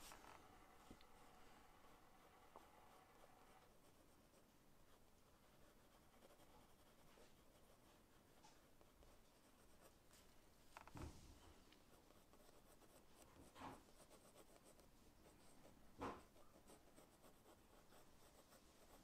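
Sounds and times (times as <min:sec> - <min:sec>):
pencil scratching on paper: 0:00.0 - 0:10.0, 0:11.8 - 0:19.0.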